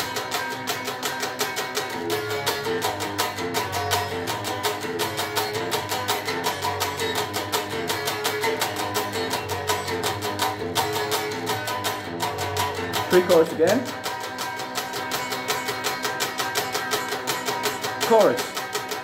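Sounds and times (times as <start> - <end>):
electric guitar strumming: 0.0 - 19.0.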